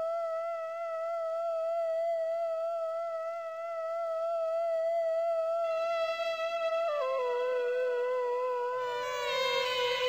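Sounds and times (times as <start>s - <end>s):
theremin-like synthesizer note: 5.7s - 10.0s.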